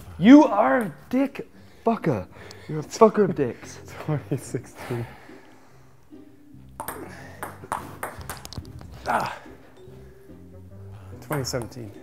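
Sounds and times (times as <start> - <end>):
table tennis ball clicking: 6.7 - 8.9.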